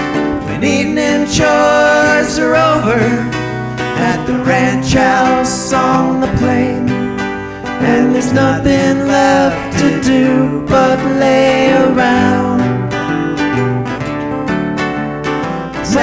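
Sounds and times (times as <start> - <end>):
acoustic guitars strumming: 0.0 - 16.0
mandolin plucking: 6.1 - 16.0.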